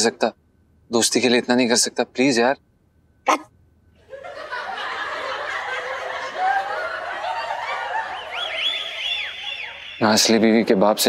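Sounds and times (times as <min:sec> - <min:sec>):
short vocal exclamation: 0:03.3 - 0:03.5
laugh track: 0:03.3 - 0:10.0.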